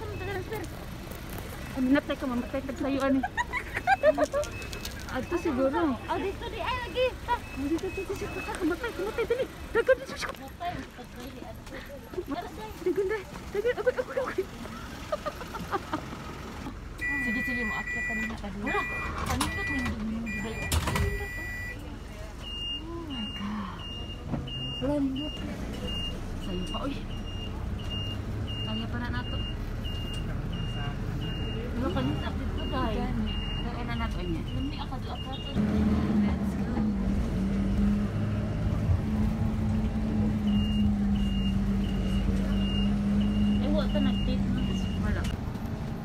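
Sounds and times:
bus reversing alarm beeping: 0.0s - 0.6s, 1.8s - 9.4s, 17.0s - 21.8s, 22.4s - 35.6s, 40.2s - 45.4s
high electronic beep: 17.0s - 21.8s, 40.5s - 45.1s
vehicle engine drone: 21.7s - 46.0s.

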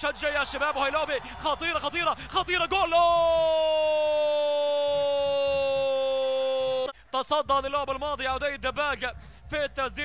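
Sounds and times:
commentator's long held shout: 0.3s - 6.9s.

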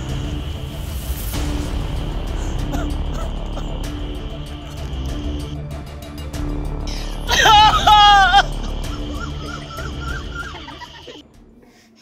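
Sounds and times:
background music: 0.0s - 12.0s
wavering cries: 7.0s - 11.2s
man wailing in grief: 7.3s - 11.2s.

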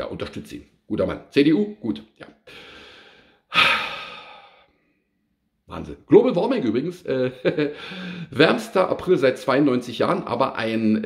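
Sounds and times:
man breathing: 2.4s - 5.2s, 7.7s - 8.3s
man sighing: 2.5s - 4.7s, 7.7s - 8.3s.

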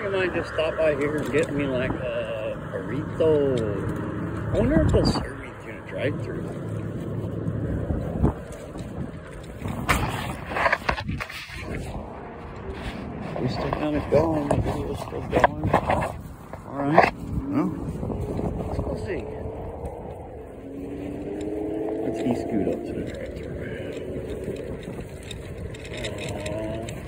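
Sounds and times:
road rumble: 0.0s - 27.0s
wind on microphone: 0.0s - 27.0s
scooter knocks and rattles: 23.0s - 27.0s.

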